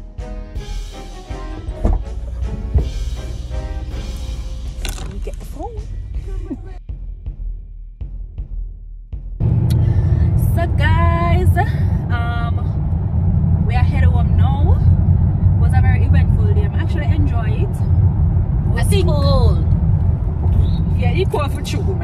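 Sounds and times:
car engine and road rumble: 1.2 - 6.9, 9.4 - 22.0
woman talking: 4.9 - 6.8, 10.3 - 12.7, 13.6 - 14.9, 15.6 - 17.9, 18.7 - 19.7, 20.9 - 22.0.

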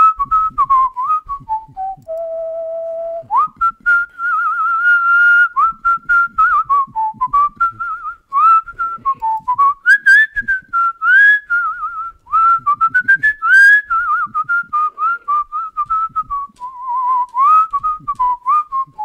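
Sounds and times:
person whistling a tune: 0.0 - 19.0.

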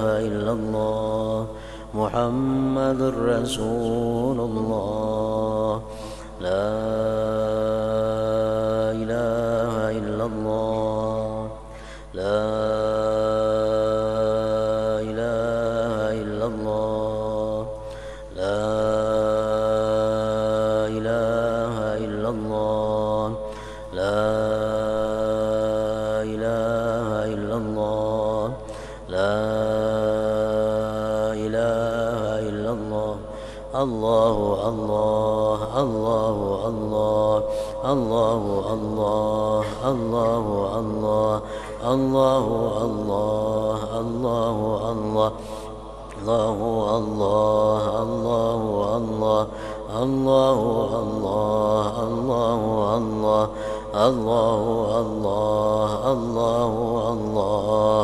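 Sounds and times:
man chanting melodically: 0.0 - 58.0.

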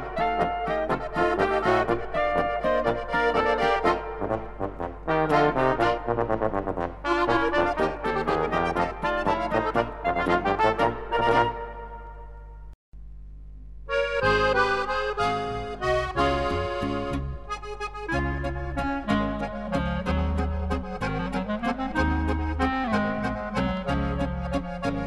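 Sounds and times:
polka band music: 0.0 - 12.3, 13.9 - 25.0
accordion: 0.0 - 12.5, 13.9 - 25.0
pulsing bass line: 14.2 - 25.0.

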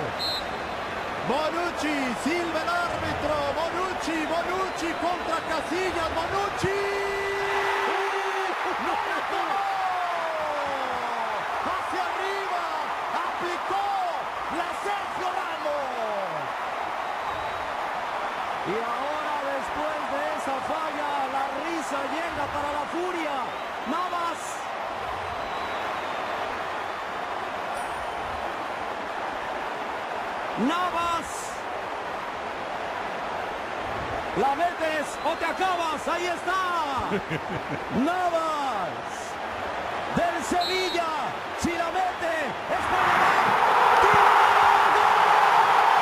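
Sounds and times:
stadium crowd din: 0.0 - 46.0.

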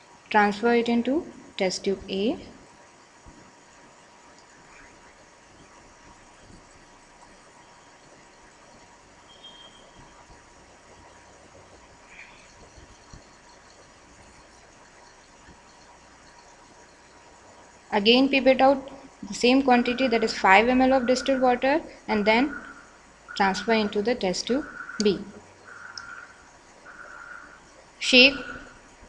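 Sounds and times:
faint steady hiss: 0.0 - 29.0
thin steady tone: 0.0 - 29.0
faint chirp: 4.4 - 10.4, 11.4 - 17.9, 19.8 - 24.0, 24.6 - 28.8.

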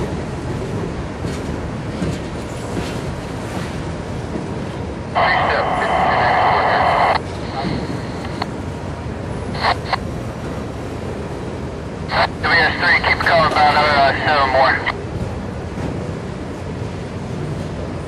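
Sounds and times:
steady low rumble: 4.2 - 17.6
radio transmission bursts: 5.2 - 8.4, 9.6 - 10.0, 12.1 - 14.9.

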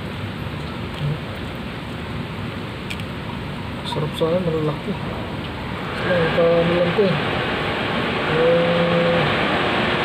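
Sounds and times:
steady rushing noise: 4.9 - 10.0
man's voice: 8.2 - 9.3.

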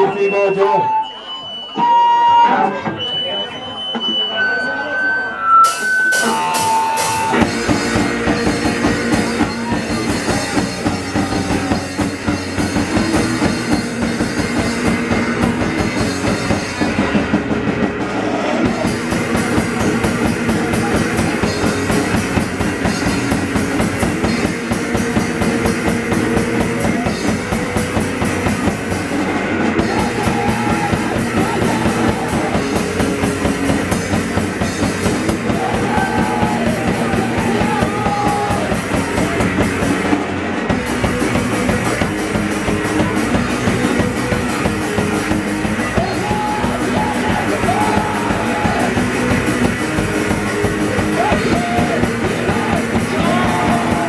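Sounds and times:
electric guitar: 5.8 - 54.0
bass guitar: 5.9 - 54.0
rapid drumming: 6.1 - 54.0.

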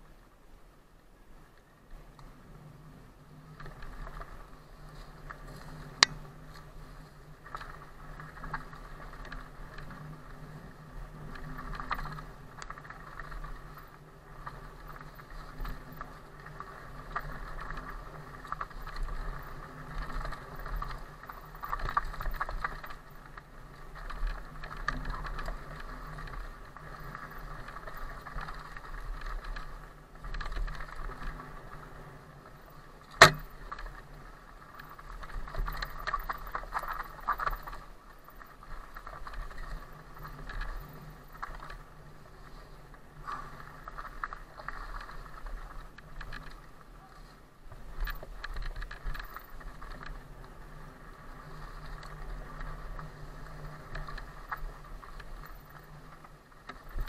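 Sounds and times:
bike tyres on dirt trail: 0.0 - 57.0
faint steady hum: 0.0 - 57.0
bike hitting something: 33.1 - 33.5
bike frame rattle: 33.1 - 33.8.

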